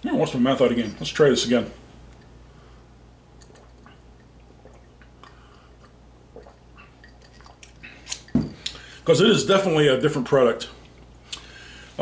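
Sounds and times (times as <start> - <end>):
wet mouth sounds and lip smacks: 3.4 - 8.8.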